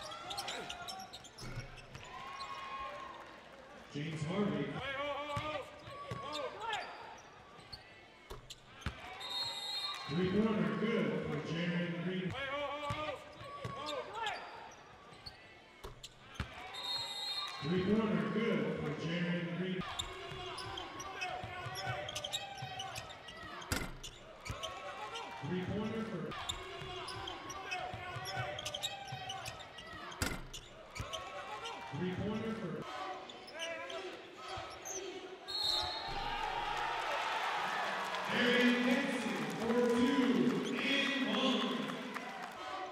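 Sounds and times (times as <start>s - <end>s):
crowd noise: 0.0s - 42.9s
voices in an arena: 0.0s - 42.9s.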